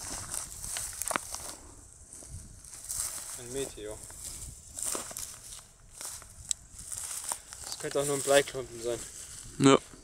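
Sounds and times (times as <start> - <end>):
handling rustle and ticks: 0.0 - 10.0.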